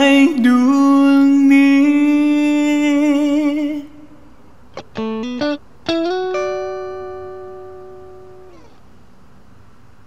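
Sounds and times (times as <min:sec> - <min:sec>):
electric guitar note bending down: 0:04.8 - 0:08.8.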